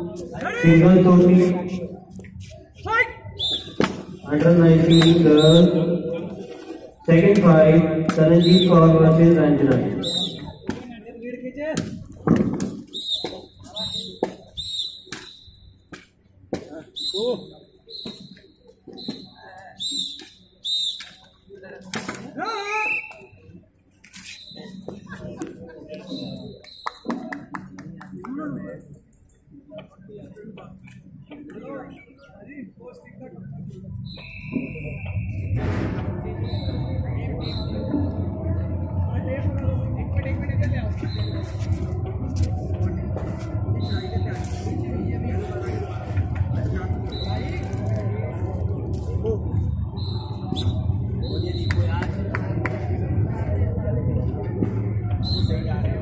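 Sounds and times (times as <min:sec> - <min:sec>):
people's voices outdoors: 0:00.0 - 0:56.0.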